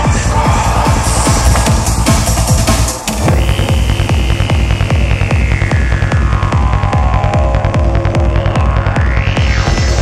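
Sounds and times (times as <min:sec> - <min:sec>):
psytrance kick and bassline: 0:00.0 - 0:10.0.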